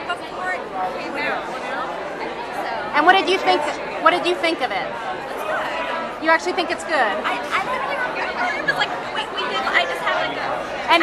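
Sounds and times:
crowd chatter: 0.0s - 11.0s
several voices talking: 0.0s - 11.0s.

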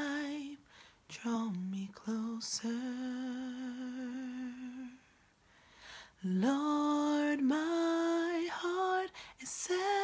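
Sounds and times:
woman singing unaccompanied: 0.0s - 5.2s, 6.2s - 10.0s.

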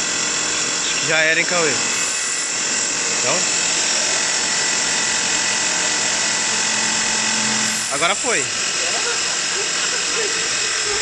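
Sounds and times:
metal lathe cutting: 0.0s - 11.0s.

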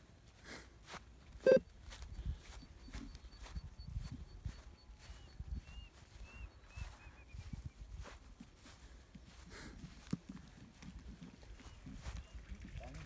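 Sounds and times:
footsteps on grass: 0.0s - 12.5s
faint bird chirps: 1.4s - 8.2s.

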